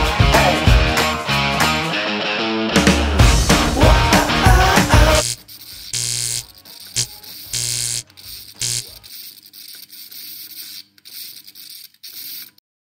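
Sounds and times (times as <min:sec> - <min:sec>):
electronic buzzing static: 0:05.1 - 0:12.6.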